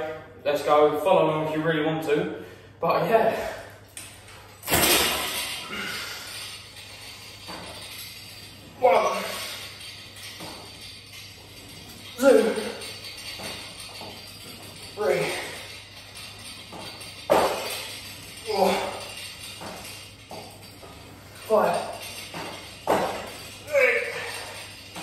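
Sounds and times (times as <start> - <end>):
weight stack jingling and clinking: 3.3 - 25.0
person grunting with effort: 18.4 - 19.0, 23.6 - 24.6.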